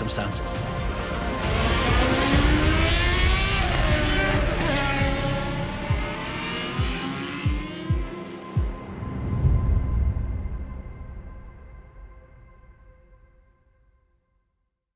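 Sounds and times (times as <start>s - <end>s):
racing car engines revving past: 0.8s - 8.7s.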